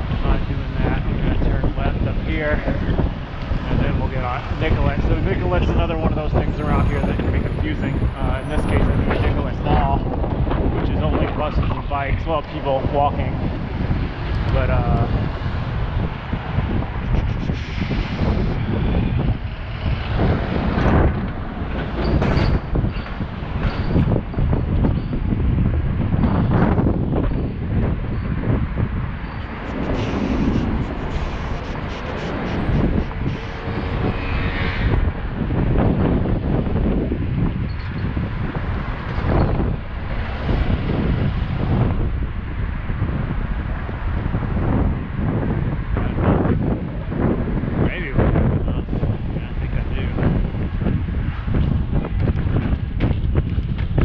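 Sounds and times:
city street traffic: 0:00.0 - 0:54.0
wind buffeting microphone: 0:00.0 - 0:54.0.

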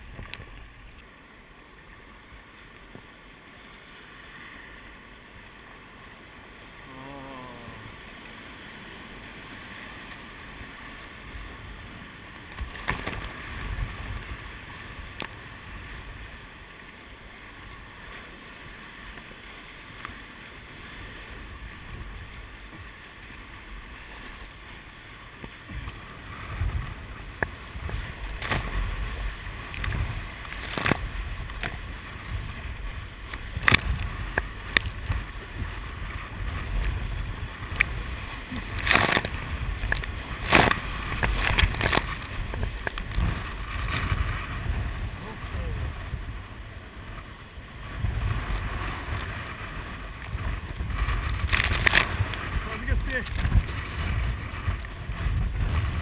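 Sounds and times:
wind rumble on microphone: 0:00.0 - 0:01.1, 0:08.8 - 0:56.0
rushing water: 0:00.0 - 0:56.0
waves splashing over boat: 0:00.0 - 0:56.0.

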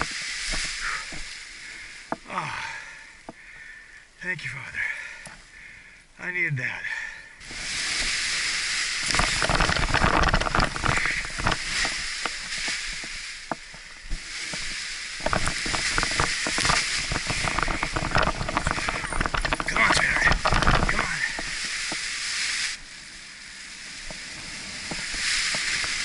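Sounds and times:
fabric wing rustling and flapping: 0:00.0 - 0:02.1, 0:07.4 - 0:23.0, 0:23.9 - 0:26.0
steady hiss: 0:00.0 - 0:26.0
wind buffeting microphone: 0:07.4 - 0:22.1.

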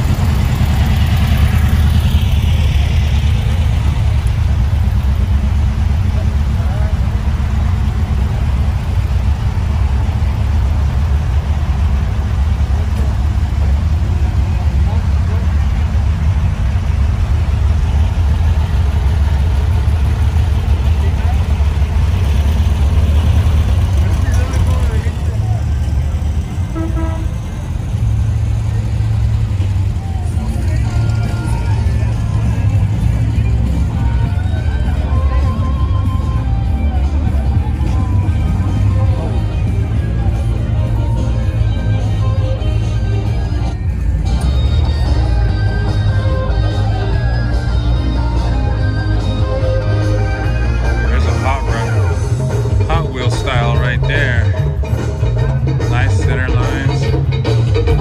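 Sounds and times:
vehicle engine running: 0:00.0 - 0:58.0
background voices: 0:27.5 - 0:43.8.

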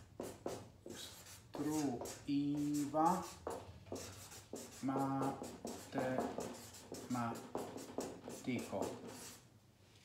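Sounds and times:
marker pen scratching on paper: 0:00.0 - 0:09.4
man drawing out syllables: 0:01.0 - 0:03.4, 0:04.6 - 0:09.3.

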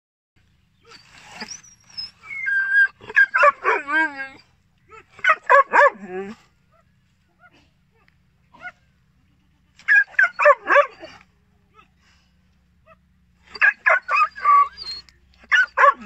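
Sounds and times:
dog barking high: 0:02.4 - 0:04.1, 0:05.2 - 0:06.3, 0:09.8 - 0:11.2, 0:13.5 - 0:16.0.

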